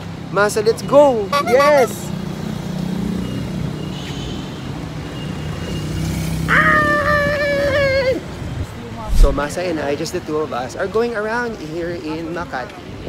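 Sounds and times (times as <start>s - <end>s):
road vehicles passing: 0.0s - 11.0s
person calling out ah: 6.5s - 8.2s.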